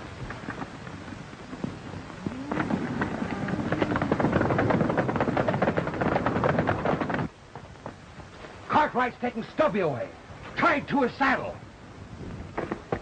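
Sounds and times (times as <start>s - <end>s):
horses galloping: 0.0s - 11.1s, 12.3s - 13.0s.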